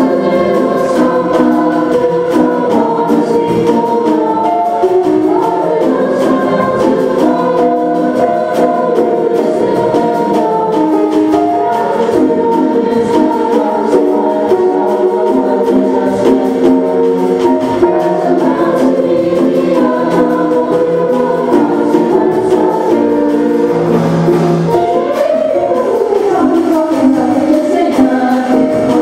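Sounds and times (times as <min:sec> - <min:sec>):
choir singing bossa nova: 0:00.0 - 0:29.0.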